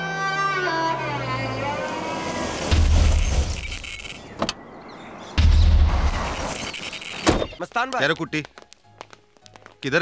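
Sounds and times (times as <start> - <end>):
car engine and tyres rumbling: 0.0 - 7.6.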